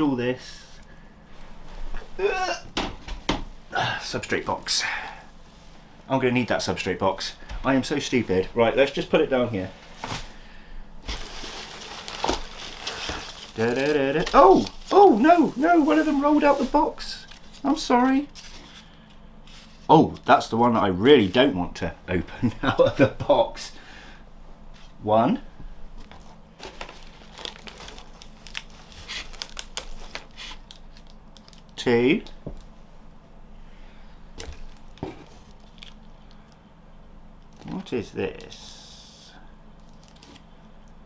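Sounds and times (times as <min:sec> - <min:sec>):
packing material crinkling: 0:11.0 - 0:18.9, 0:26.1 - 0:31.8, 0:34.4 - 0:36.6, 0:39.8 - 0:40.5
shredded paper rustling: 0:11.0 - 0:18.9, 0:26.6 - 0:31.6.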